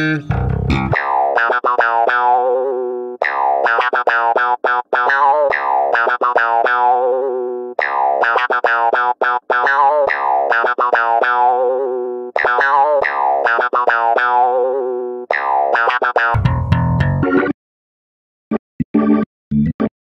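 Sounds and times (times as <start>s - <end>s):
deep bass-heavy sample: 0.0s - 1.0s, 16.4s - 17.3s.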